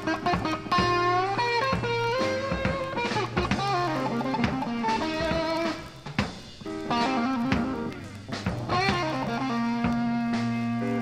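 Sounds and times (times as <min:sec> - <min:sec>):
bass guitar: 0:00.0 - 0:11.0
drum kit: 0:00.0 - 0:11.0
electric guitar lead with bent notes: 0:00.0 - 0:11.0.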